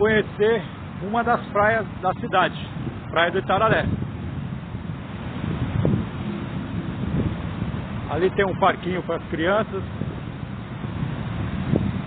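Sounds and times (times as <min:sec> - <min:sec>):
strong wind on microphone: 0:00.0 - 0:12.0.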